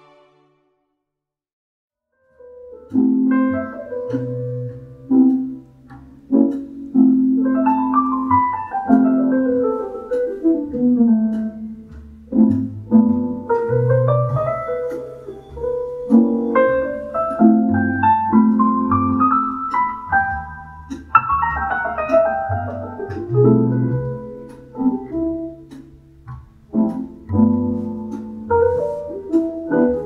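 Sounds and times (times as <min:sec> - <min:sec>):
piano music through small speaker: 0:02.2 - 0:30.0.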